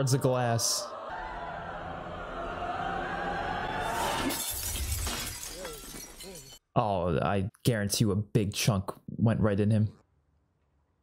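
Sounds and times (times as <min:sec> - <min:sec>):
glass shattering: 0:03.9 - 0:06.6.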